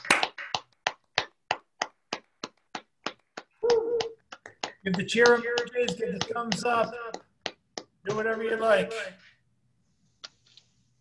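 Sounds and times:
person clapping: 0.0 - 8.7.

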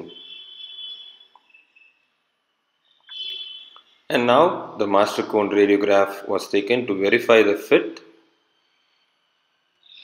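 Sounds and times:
high-pitched dental tool whine: 0.0 - 4.6, 8.2 - 10.0.

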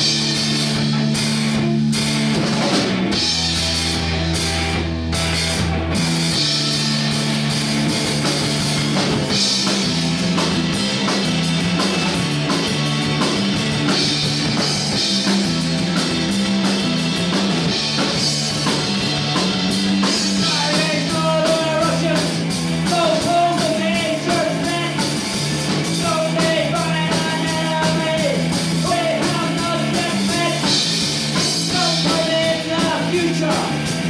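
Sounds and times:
drum kit beat: 0.0 - 34.0
electric guitar: 0.0 - 34.0
held low bass notes: 0.0 - 34.0.

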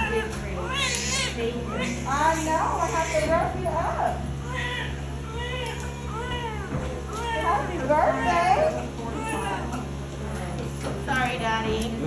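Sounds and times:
newborn baby crying: 0.0 - 3.4, 4.4 - 9.8
steady low hum: 0.0 - 12.0.

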